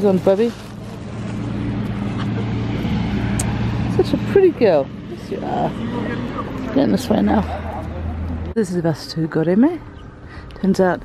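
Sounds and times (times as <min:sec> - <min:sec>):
vehicle engine running: 0:00.0 - 0:08.6.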